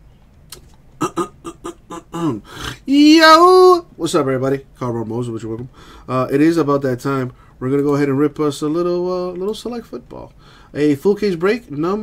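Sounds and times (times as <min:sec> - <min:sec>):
man coughing: 0:01.0 - 0:02.8.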